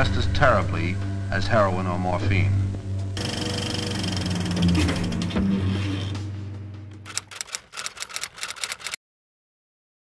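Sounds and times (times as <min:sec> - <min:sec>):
film projector hum: 0:03.2 - 0:05.4, 0:07.1 - 0:09.0
projector mechanism clicking: 0:07.1 - 0:09.0.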